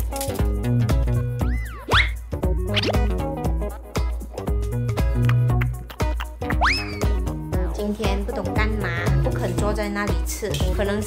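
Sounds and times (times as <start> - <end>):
playful background music: 0.0 - 11.0
rising whistle sound effect: 6.6 - 7.1.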